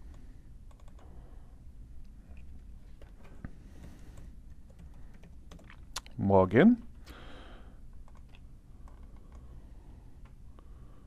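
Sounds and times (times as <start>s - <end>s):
computer keyboard keystrokes: 0.7s - 1.1s, 3.0s - 5.9s, 8.0s - 9.5s.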